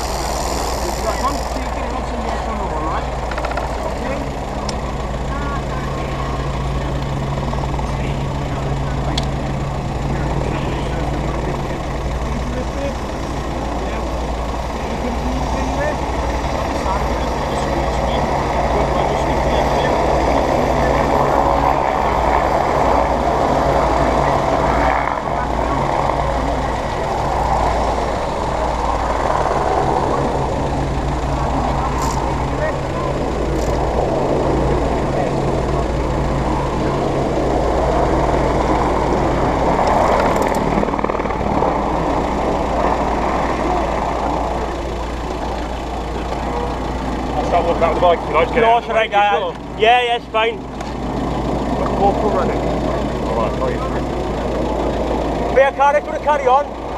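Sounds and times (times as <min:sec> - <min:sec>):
people talking: 0:00.0 - 0:40.3, 0:42.5 - 0:50.7, 0:51.7 - 0:56.8
engine idling: 0:00.0 - 0:56.9.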